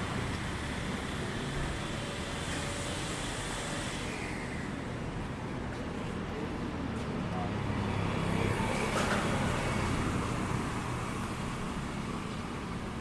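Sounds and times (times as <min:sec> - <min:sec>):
street traffic: 0:00.0 - 0:13.0
car passing by: 0:07.6 - 0:13.0.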